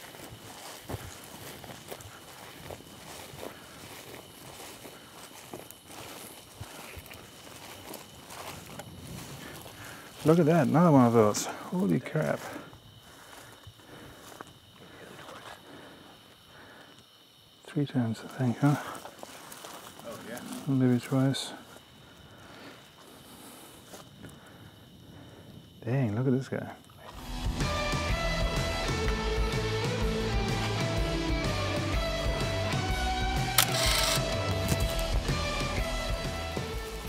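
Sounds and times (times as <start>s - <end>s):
footsteps through grass: 0.0s - 15.6s, 18.2s - 24.1s, 33.5s - 37.0s
grass rustling: 0.0s - 37.0s.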